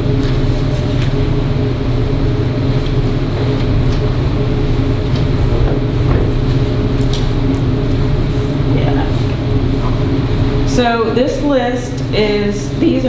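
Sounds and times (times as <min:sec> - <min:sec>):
low hum and rumble: 0:00.0 - 0:13.0.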